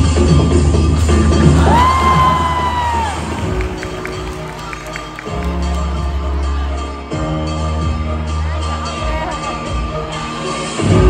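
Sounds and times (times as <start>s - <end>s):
upbeat backing music: 0.0s - 11.0s
scattered claps: 1.0s - 6.4s
crowd cheering: 1.4s - 7.0s
long high shout: 1.6s - 3.8s.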